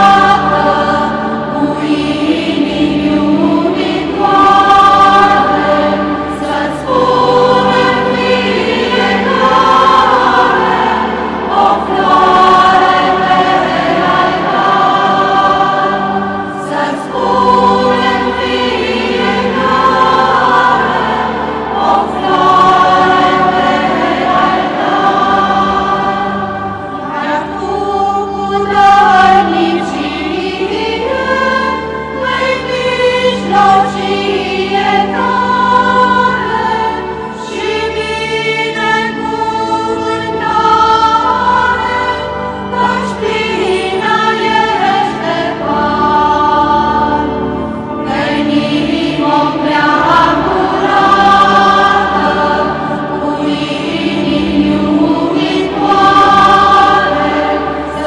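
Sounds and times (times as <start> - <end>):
choir singing a hymn: 0.0 - 58.0
steady low notes: 0.0 - 58.0.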